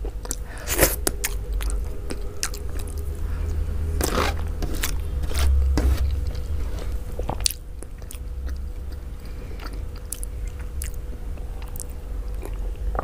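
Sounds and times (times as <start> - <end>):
person chewing with wet clicks: 0.0 - 3.6, 4.6 - 13.0
faint steady hum: 0.0 - 13.0.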